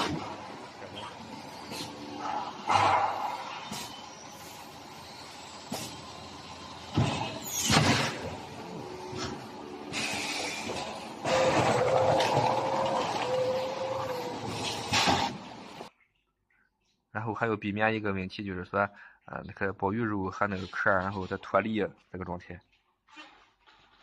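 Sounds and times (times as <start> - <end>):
machine humming with rushing noise: 0.0 - 15.9.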